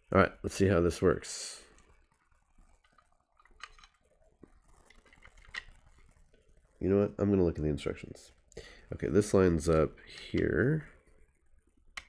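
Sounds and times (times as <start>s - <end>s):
plastic parts clicking and rubbing: 1.7s - 6.8s.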